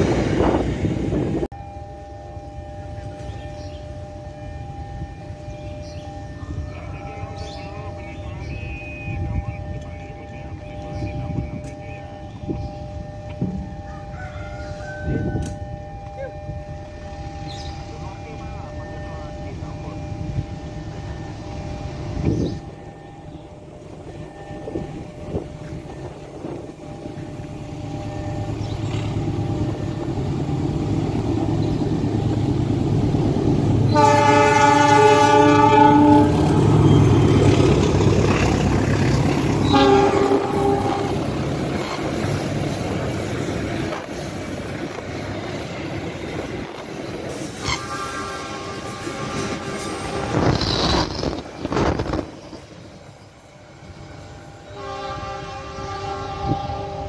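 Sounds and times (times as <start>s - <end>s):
train rumbling past: 0.0s - 57.0s
train wheels on rails: 17.0s - 57.0s
train horn blasts: 33.9s - 37.0s, 39.5s - 41.6s, 47.6s - 51.2s, 54.4s - 57.0s.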